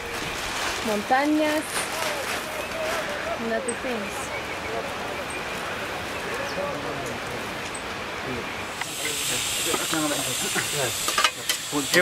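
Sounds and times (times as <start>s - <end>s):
faint voices: 0.0s - 12.0s
camp stove hissing: 8.6s - 12.0s.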